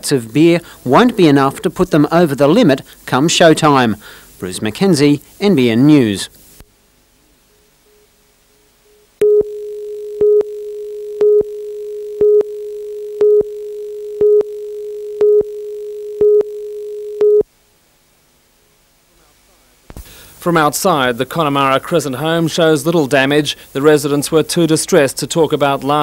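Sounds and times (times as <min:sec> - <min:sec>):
short high beeps: 0:09.2 - 0:17.4.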